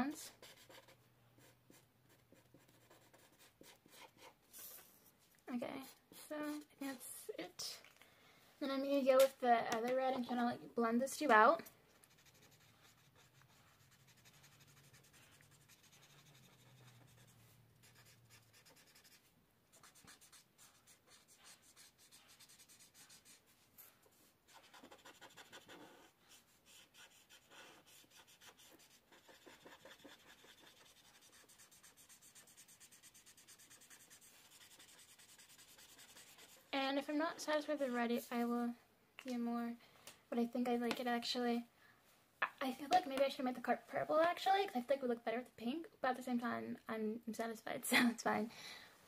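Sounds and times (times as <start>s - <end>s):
marker scratching on paper: 0.3s - 5.0s, 5.8s - 7.0s, 12.0s - 36.7s.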